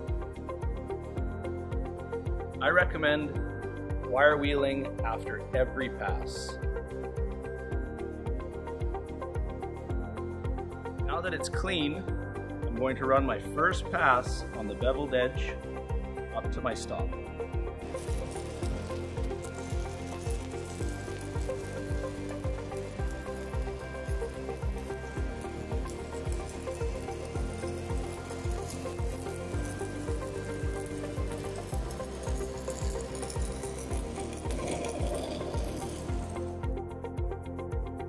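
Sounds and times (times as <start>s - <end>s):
background music with beat: 0.0s - 38.0s
welding arc sizzling: 16.7s - 36.8s.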